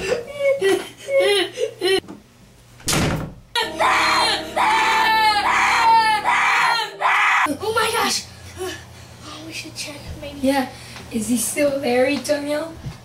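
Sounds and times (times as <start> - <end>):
long loud screams: 3.6 - 7.5
people whimpering: 3.6 - 7.5.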